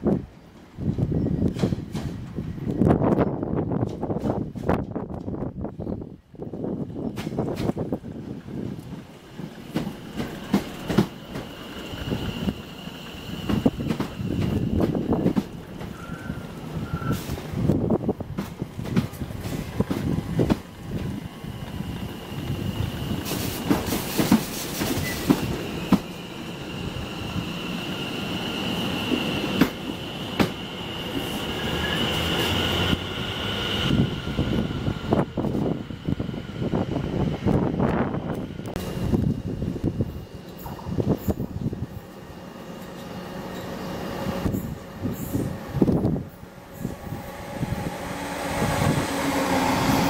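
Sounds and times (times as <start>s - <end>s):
train low rumble: 0.0s - 50.0s
train wheels clicking over rail joints: 0.9s - 3.2s, 7.1s - 26.2s, 28.8s - 31.4s
high wheel squeal: 11.2s - 14.9s, 15.8s - 17.4s, 24.8s - 34.6s.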